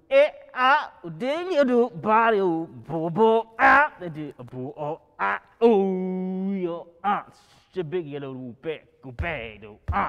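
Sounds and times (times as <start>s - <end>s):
man scat-singing: 9.2s - 10.0s.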